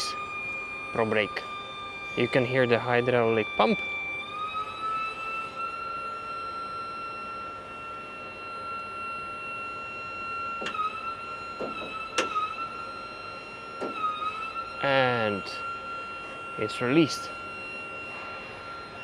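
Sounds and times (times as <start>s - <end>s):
hydraulic pump whining: 0.0s - 19.0s.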